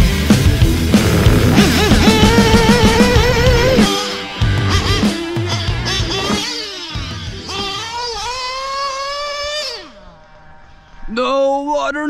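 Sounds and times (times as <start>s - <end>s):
model truck engine whining: 0.7s - 10.0s.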